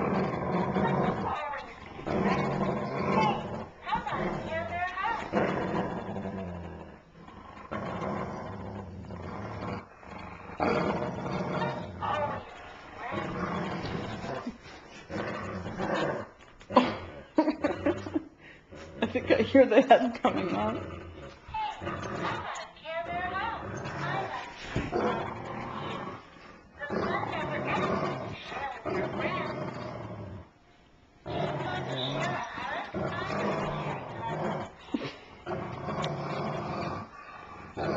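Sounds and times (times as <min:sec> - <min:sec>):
dogs growling: 0:00.0 - 0:30.5, 0:31.2 - 0:37.9.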